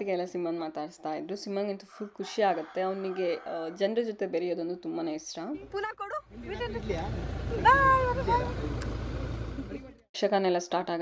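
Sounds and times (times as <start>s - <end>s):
car idling: 6.3s - 10.0s.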